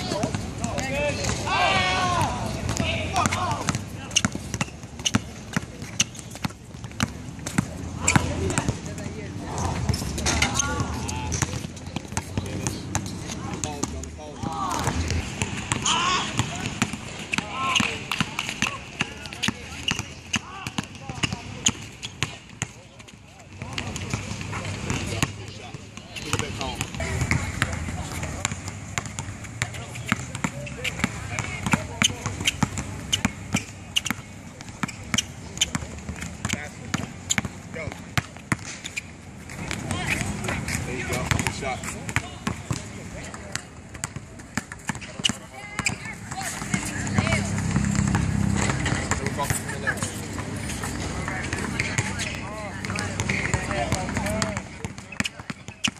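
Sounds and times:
basketball bouncing on asphalt: 0.0s - 55.9s
people's voices: 0.0s - 55.9s.

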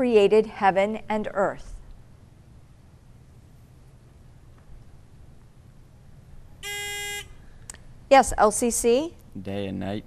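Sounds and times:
electronic buzzer tone: 6.6s - 7.4s.

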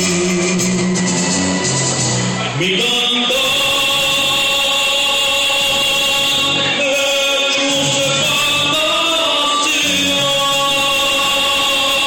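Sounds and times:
musical accompaniment: 0.0s - 12.0s
man singing long note: 2.4s - 12.0s.

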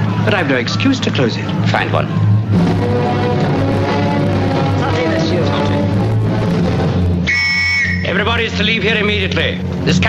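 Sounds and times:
orchestral film music: 0.0s - 10.0s
police whistle blast: 7.2s - 8.2s.

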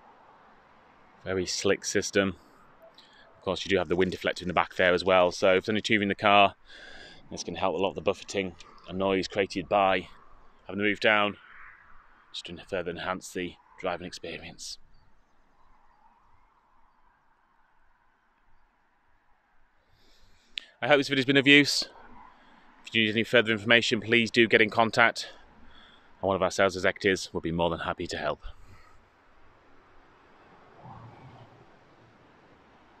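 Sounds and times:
steady low hiss: 0.0s - 11.3s
faint outdoor background hiss: 0.0s - 33.0s.

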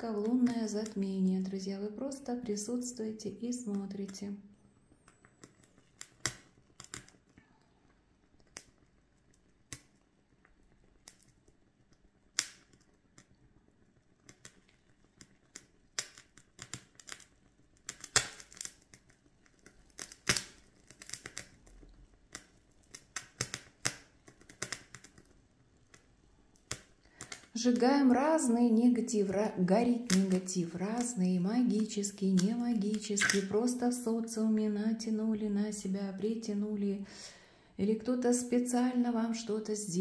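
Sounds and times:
candle crackling and popping: 0.0s - 40.0s.

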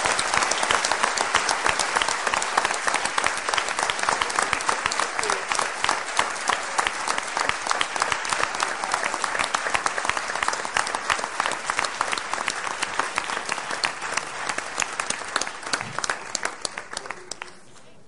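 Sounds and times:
audience applauding: 0.0s - 17.8s.

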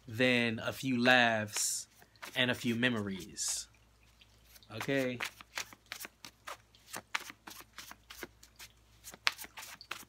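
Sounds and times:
cards shuffled by hand: 1.5s - 3.6s, 4.4s - 10.0s.

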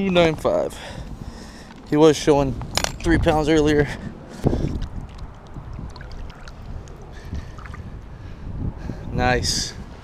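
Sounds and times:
wind rumbling on microphone: 0.0s - 10.0s
water splashing and lapping: 4.4s - 8.0s.

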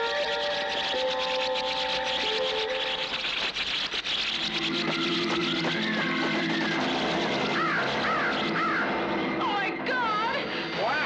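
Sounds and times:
harsh bird screeches: 0.0s - 9.8s
dense background din: 0.0s - 11.0s.

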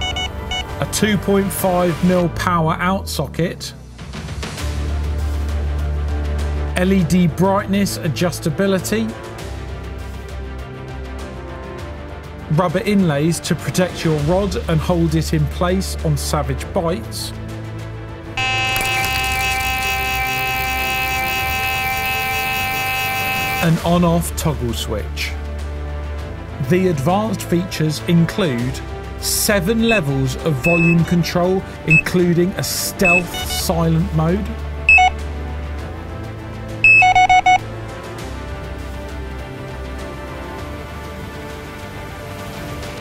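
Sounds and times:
soft background music: 0.0s - 3.6s, 4.8s - 18.0s, 19.7s - 43.0s
bite alarm continuous high tone: 18.4s - 23.8s, 30.7s - 31.0s, 33.1s - 33.7s, 34.9s - 35.2s, 36.8s - 37.6s.

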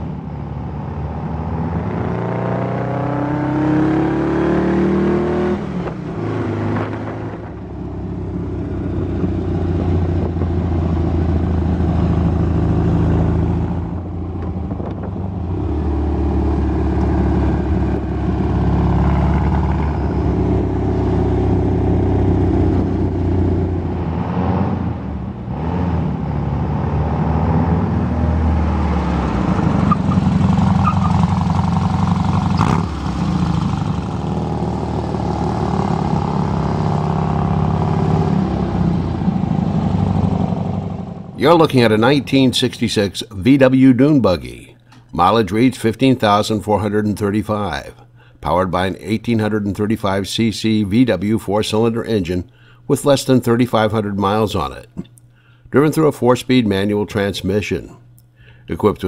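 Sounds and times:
dune buggy engine running: 0.0s - 42.6s.

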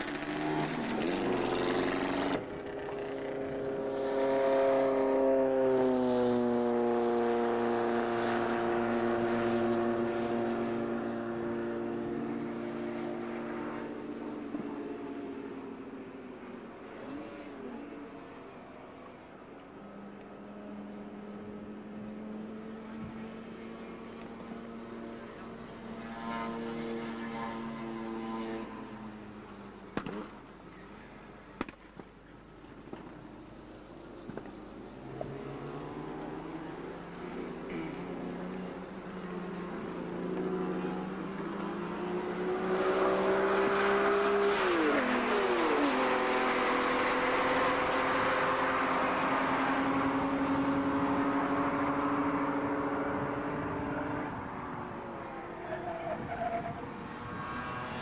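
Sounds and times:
sports car engines running: 0.0s - 58.0s.

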